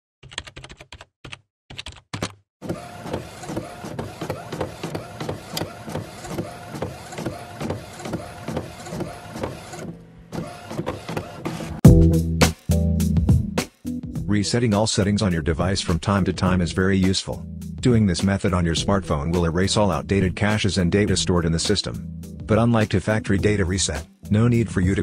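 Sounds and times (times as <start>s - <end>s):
rhythmic mechanical whirring pulse: 2.6s - 11.8s.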